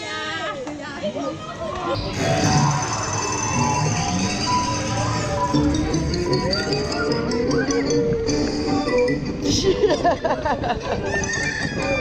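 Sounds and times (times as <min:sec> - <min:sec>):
music: 0:02.0 - 0:12.0.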